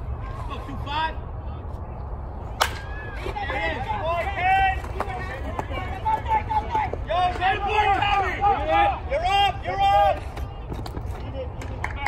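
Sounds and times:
baseball bat hitting ball: 2.5s - 3.0s.

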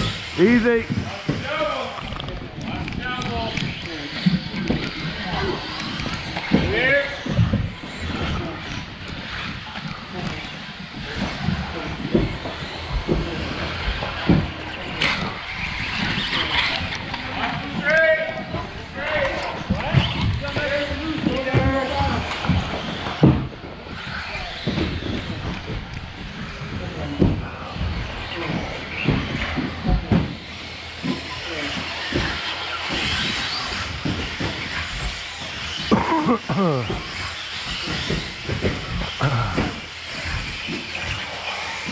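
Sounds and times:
electric motors whining: 0.0s - 41.9s.

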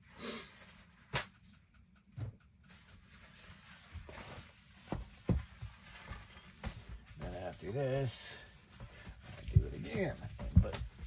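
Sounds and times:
paper towel wiping plastic tub: 3.1s - 11.0s.

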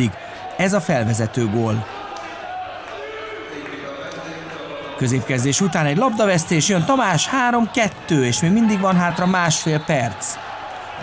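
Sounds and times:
distant shouting players: 0.0s - 11.0s.

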